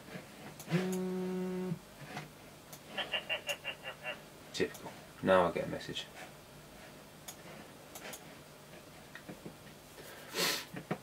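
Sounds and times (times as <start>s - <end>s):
phone vibrating against desk: 0.7s - 1.8s.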